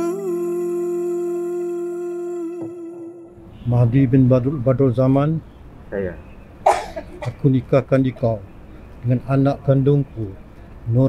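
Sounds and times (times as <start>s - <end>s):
woman singing a long note: 0.0s - 3.4s.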